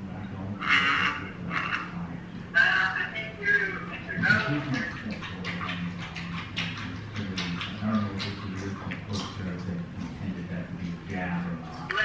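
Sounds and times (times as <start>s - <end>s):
low steady hum: 0.0s - 12.0s
muffled voices through a phone: 0.0s - 12.0s.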